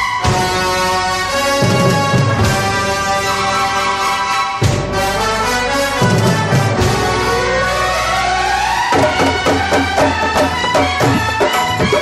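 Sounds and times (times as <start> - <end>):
rhythmic beat: 8.9 - 12.0.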